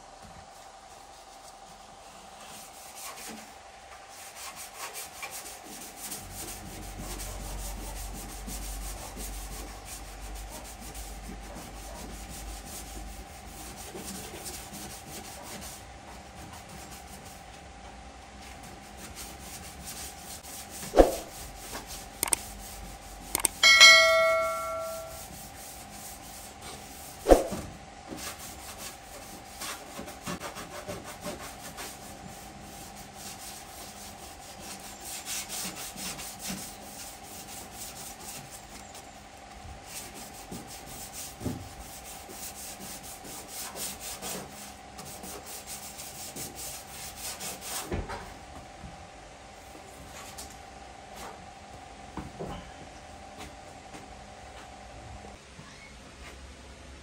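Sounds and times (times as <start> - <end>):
hand sanding car panel: 4.1 - 17.6, 28.1 - 38.8, 39.8 - 47.9
metallic ring on sheet metal: 23.4 - 25.4.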